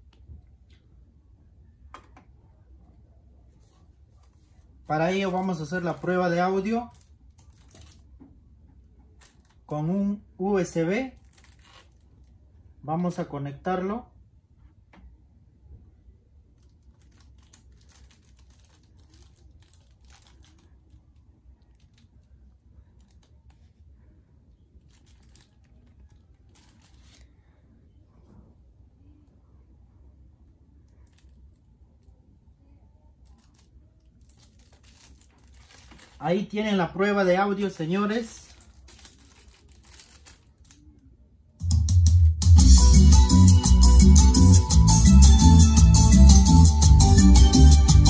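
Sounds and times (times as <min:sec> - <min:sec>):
low steady hum: 0:00.0 - 0:41.6
clicks and rustles of handling: 0:03.6 - 0:09.7, 0:16.6 - 0:23.9, 0:24.8 - 0:27.3, 0:33.2 - 0:36.3, 0:37.6 - 0:41.1
loud bass-heavy music: 0:41.7 - 0:48.0.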